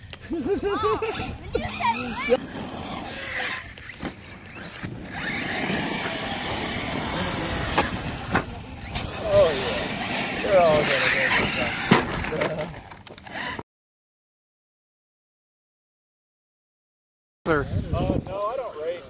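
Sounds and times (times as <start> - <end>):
rc car motors rushing: 0.0 - 13.6
rc cars landing knocks: 2.0 - 13.4.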